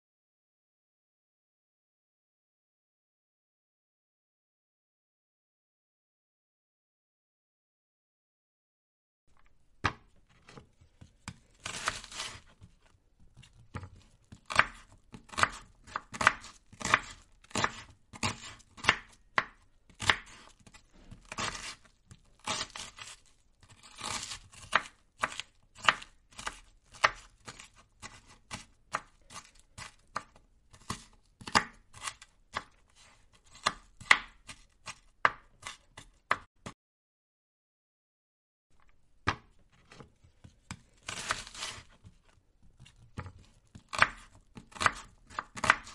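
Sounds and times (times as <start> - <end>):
knife chopping onion on board: 9.8 - 36.8, 39.2 - 45.9.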